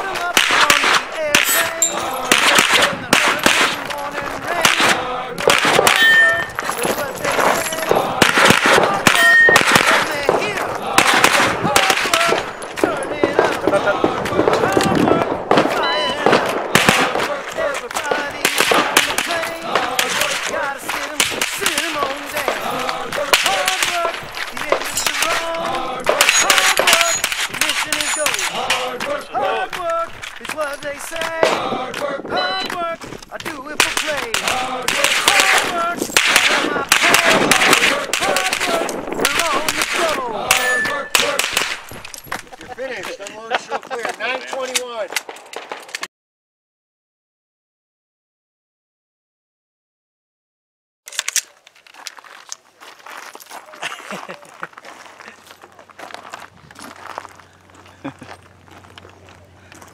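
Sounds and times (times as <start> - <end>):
carbine firing rapid shots: 0.1 - 6.1, 6.9 - 28.9, 33.8 - 41.8.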